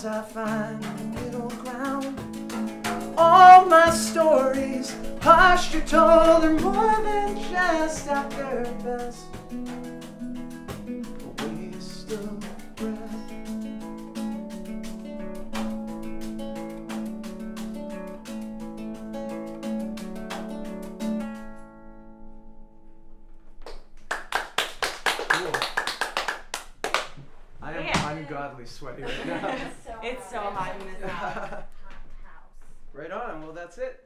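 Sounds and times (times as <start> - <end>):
guitar and drums song: 0.0 - 21.6
people clapping: 23.6 - 28.2, 30.5 - 31.0.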